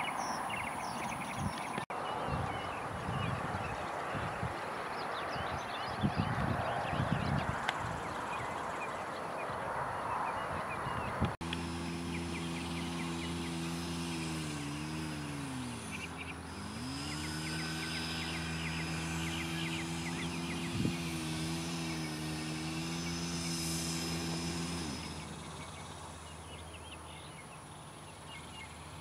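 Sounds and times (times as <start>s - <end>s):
engine running: 11.1s - 29.0s.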